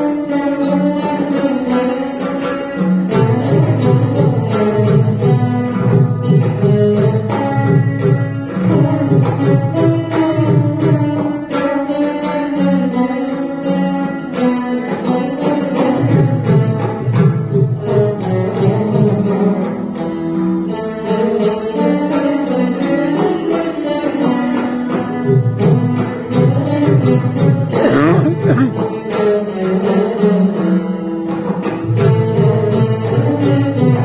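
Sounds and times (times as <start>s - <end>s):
mridangam drumming: 0.0s - 34.0s.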